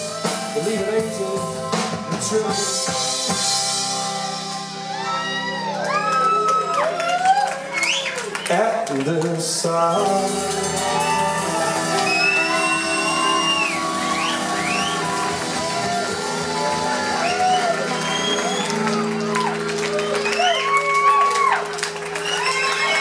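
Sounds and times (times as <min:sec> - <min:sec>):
live band playing: 0:00.0 - 0:23.0
crowd whooping and shouting: 0:04.7 - 0:08.5, 0:09.9 - 0:23.0.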